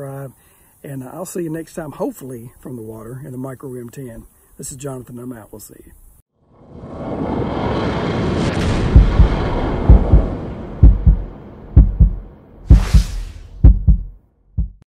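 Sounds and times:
rush of noise: 0:06.4 - 0:13.6
hissing whoosh: 0:06.5 - 0:11.7, 0:12.6 - 0:13.6
deep booming hits: 0:08.4 - 0:14.8.

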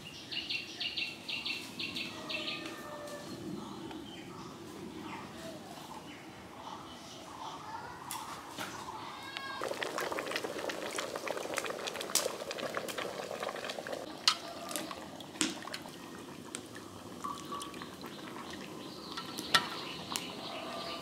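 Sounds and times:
water sloshing in metal bowl: 0:14.1 - 0:20.8.

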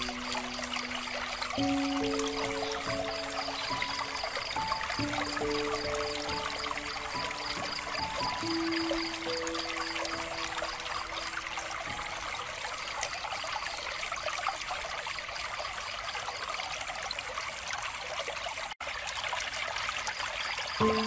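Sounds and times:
water trickling from fountain: 0:00.0 - 0:21.0.

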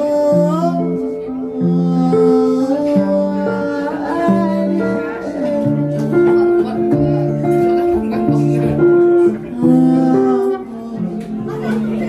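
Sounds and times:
electric guitar melody: 0:00.0 - 0:12.0.

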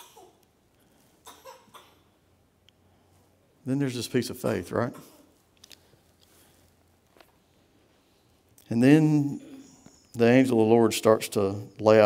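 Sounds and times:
person coughing: 0:00.0 - 0:00.4.

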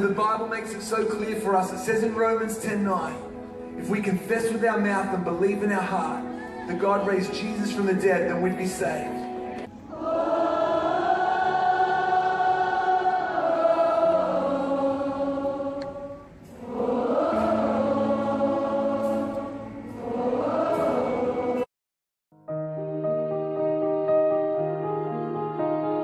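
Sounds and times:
music: 0:00.0 - 0:21.7, 0:22.3 - 0:26.0
crowd singing a worship song: 0:05.8 - 0:21.7.

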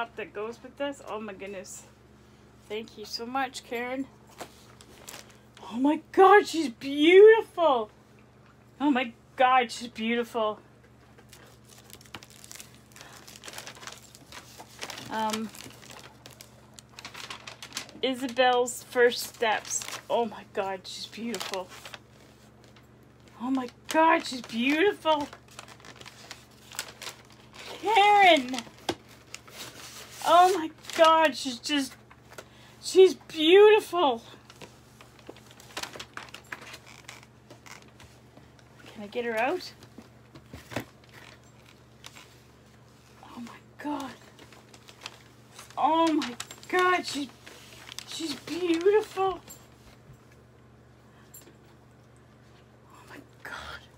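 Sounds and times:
faint low hum: 0:00.0 - 0:53.9
hands handling packaging: 0:10.9 - 0:20.2, 0:21.0 - 0:32.5, 0:34.4 - 0:38.2, 0:39.5 - 0:50.0
hands handling box packaging: 0:11.2 - 0:17.9, 0:44.0 - 0:49.3.

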